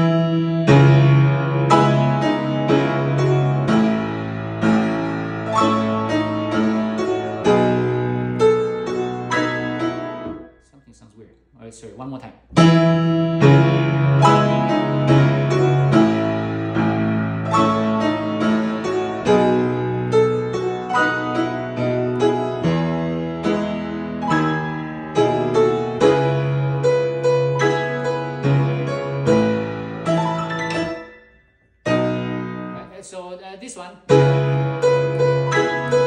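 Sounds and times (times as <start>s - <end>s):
grand piano chords: 0.0s - 11.1s, 12.5s - 33.1s, 34.0s - 36.0s.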